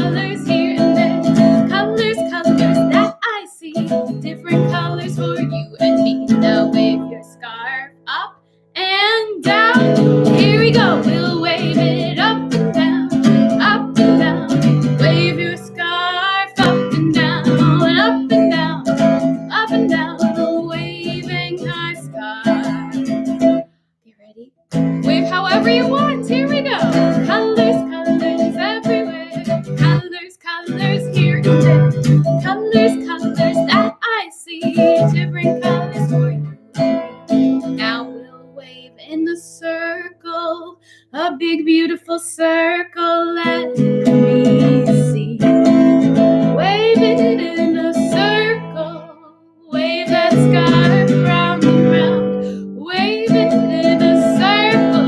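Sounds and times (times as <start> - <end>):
strummed acoustic guitar: 0.0 - 3.2, 3.8 - 7.8, 9.4 - 23.7, 24.7 - 34.0, 34.6 - 40.1, 43.4 - 55.0
woman singing: 0.0 - 23.6, 24.9 - 36.6, 37.6 - 55.0.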